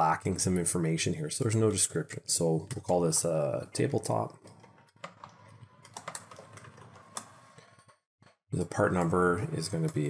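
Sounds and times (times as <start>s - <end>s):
quiet keyboard typing: 4.3s - 7.9s, 8.6s - 10.0s.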